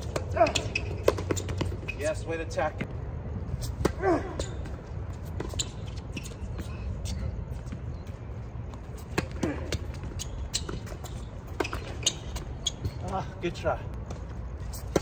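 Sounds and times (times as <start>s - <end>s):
rackets hitting tennis ball: 0.0s - 2.3s, 8.7s - 13.2s, 13.9s - 15.0s.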